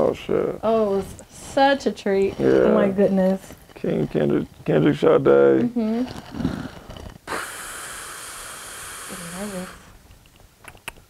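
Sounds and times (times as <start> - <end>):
high-pitched hiss: 7.2 - 10.0.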